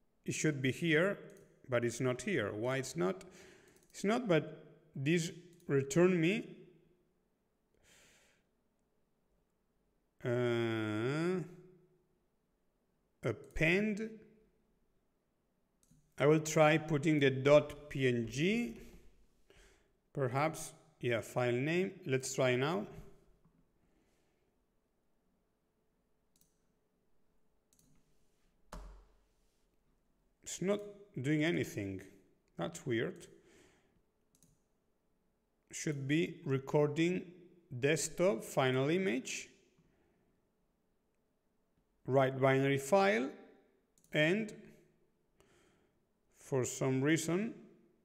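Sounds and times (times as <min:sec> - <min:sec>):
computer mouse clicks: 0:03.7 - 0:03.9, 0:26.3 - 0:26.6, 0:27.7 - 0:28.0, 0:34.3 - 0:34.6
faint exhale: 0:07.8 - 0:08.4.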